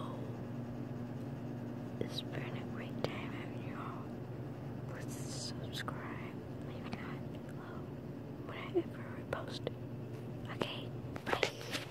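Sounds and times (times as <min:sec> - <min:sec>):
steady low hum: 0:00.0 - 0:11.9
person whispering: 0:02.0 - 0:04.1, 0:04.9 - 0:09.7, 0:10.4 - 0:11.9.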